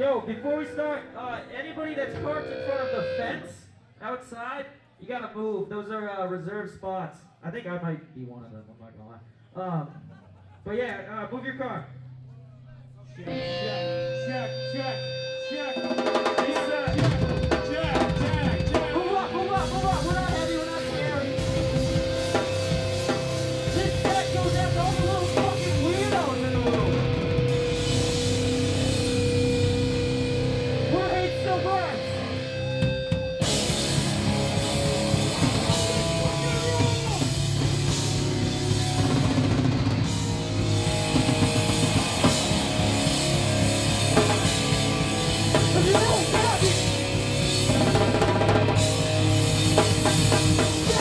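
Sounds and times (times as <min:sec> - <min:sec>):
heavy rock band playing: 0:00.0 - 0:03.5, 0:13.2 - 0:51.0
distorted guitar: 0:00.0 - 0:03.6, 0:13.2 - 0:51.0
steady held note: 0:00.0 - 0:03.6
drum kit: 0:15.5 - 0:51.0
shouted vocals: 0:35.6 - 0:37.4, 0:50.7 - 0:51.0.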